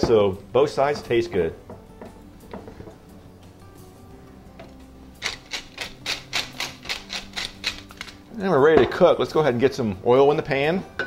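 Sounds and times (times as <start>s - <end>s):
pepper mill ratcheting crackle: 4.6s - 8.3s.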